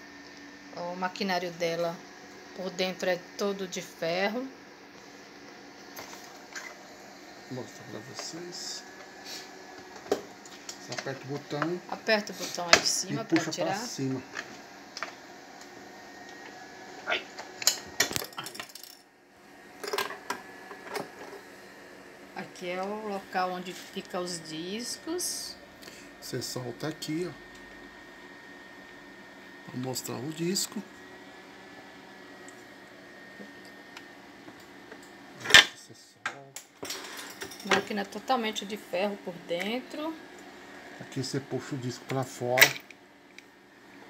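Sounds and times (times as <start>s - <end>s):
faint background hum: 0.0s - 44.0s.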